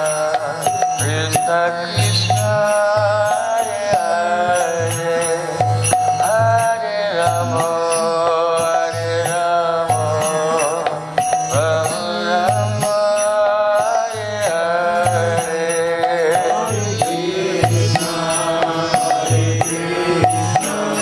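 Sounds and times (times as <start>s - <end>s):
man chanting a devotional melody: 0.0s - 21.0s
rhythmic accompaniment with low beat: 0.0s - 21.0s.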